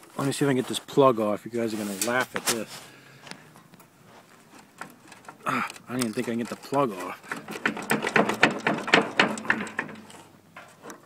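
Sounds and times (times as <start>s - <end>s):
clicking and rattling of plug: 4.5s - 11.0s.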